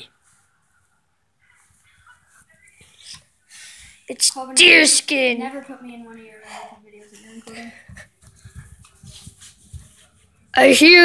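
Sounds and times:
faint footsteps: 5.6s - 10.5s.

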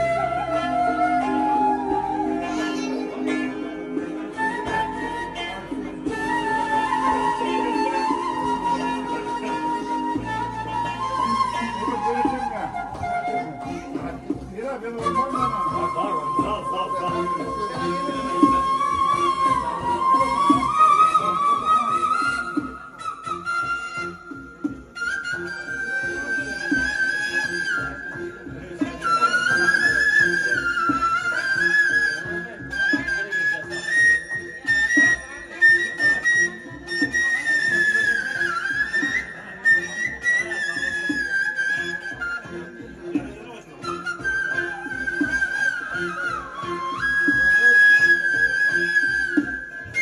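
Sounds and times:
bamboo flute playing: 0.0s - 50.0s
rhythmic accompaniment: 0.0s - 50.0s.

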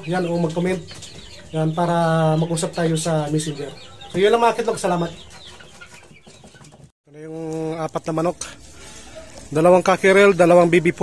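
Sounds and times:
young chickens clucking: 0.0s - 11.0s.

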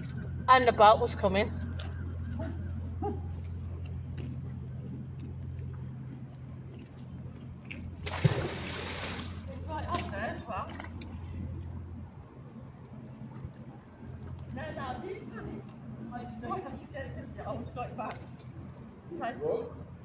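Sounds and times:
low hum: 0.0s - 19.2s
water sloshing: 7.3s - 14.6s
magnet splashing into water: 8.0s - 10.1s.

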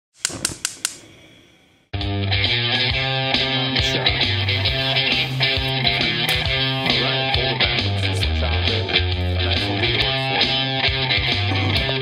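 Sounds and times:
gas stove igniter clicking: 0.1s - 1.2s
gas burner hissing: 0.1s - 1.9s, 3.4s - 8.0s.

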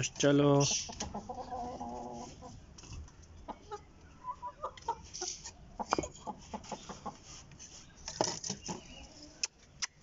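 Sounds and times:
roosters clucking: 0.0s - 9.8s.

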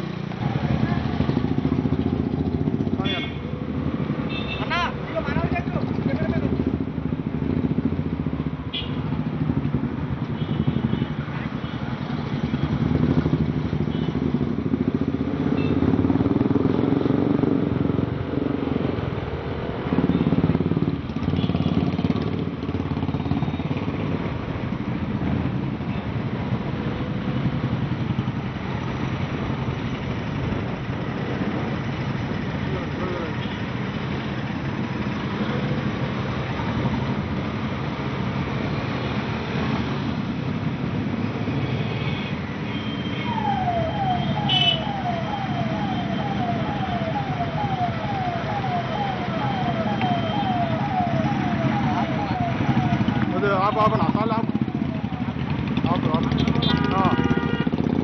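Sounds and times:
motorcycle engines rumbling: 0.0s - 58.0s.

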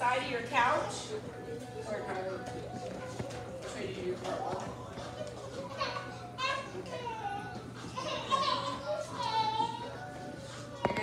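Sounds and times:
woman talking: 0.0s - 2.6s, 3.6s - 4.6s
background music: 0.0s - 11.0s
children's voices: 5.6s - 10.0s.

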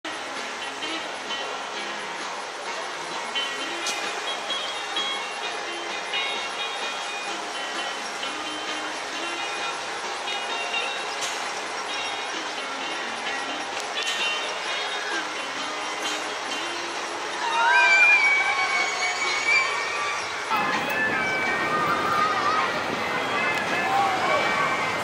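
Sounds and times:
background music: 0.0s - 25.0s
crowd chatter: 0.0s - 25.0s
roller coaster lift mechanical running: 0.1s - 25.0s.

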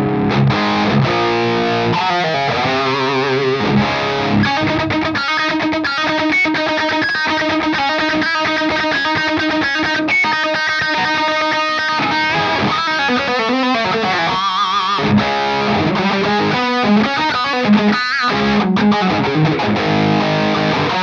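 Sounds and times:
overdriven electric guitar riff: 0.0s - 21.0s.

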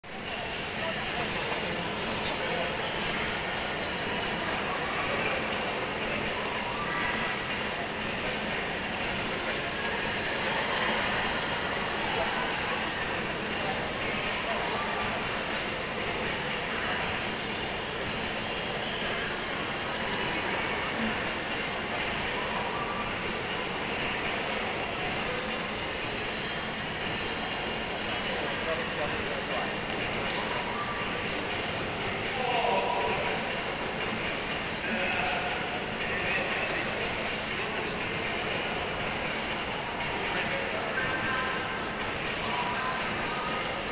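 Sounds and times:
background rush: 0.0s - 43.9s
chatter of many people: 0.0s - 43.9s.

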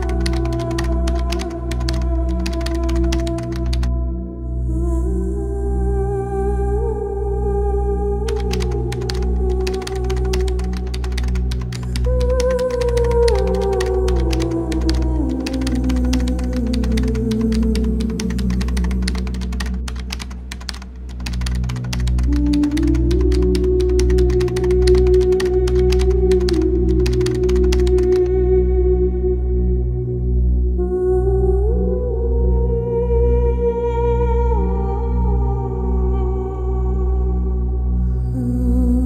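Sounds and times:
computer keyboard typing: 0.0s - 3.9s, 8.3s - 28.3s
ambient music drone: 0.0s - 39.0s.

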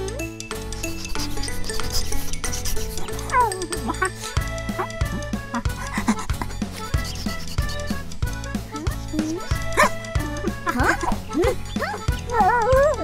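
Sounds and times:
cartoon music with steady beat: 0.0s - 13.0s.

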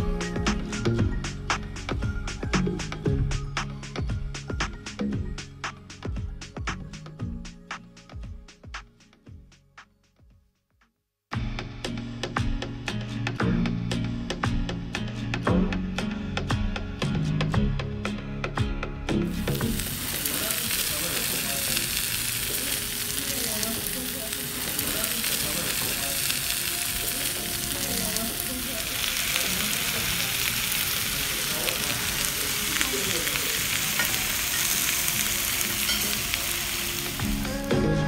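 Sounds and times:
meat sizzling on hot platters: 19.4s - 37.7s.

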